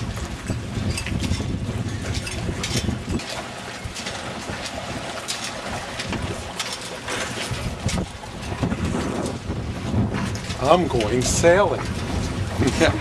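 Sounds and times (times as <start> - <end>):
rush of wind and water: 0.0 - 13.0
wind buffeting the microphone: 0.0 - 13.0.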